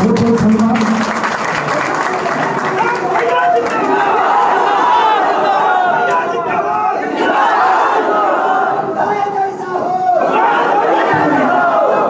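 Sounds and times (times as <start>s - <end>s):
crowd calling out: 2.7s - 12.0s.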